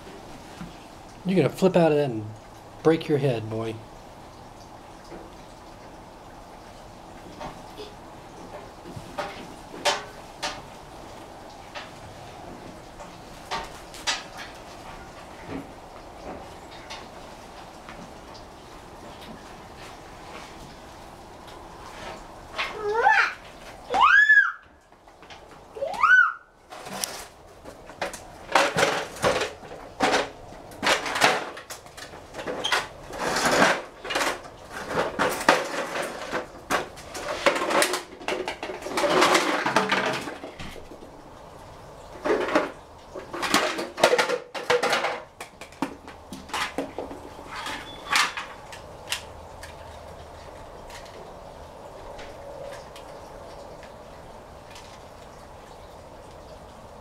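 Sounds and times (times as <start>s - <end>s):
plastic toys clattering on tile floor: 9.1s - 10.7s, 26.7s - 41.0s, 42.2s - 50.0s.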